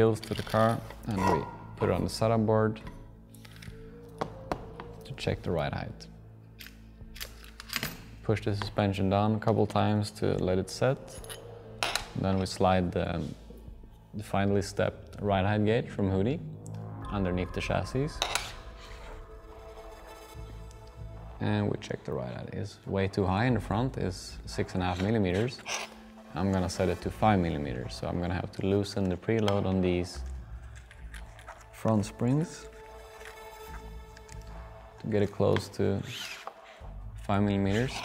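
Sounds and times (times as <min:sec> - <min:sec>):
faint background music: 0:00.0 - 0:38.0
low bass note: 0:14.2 - 0:21.5.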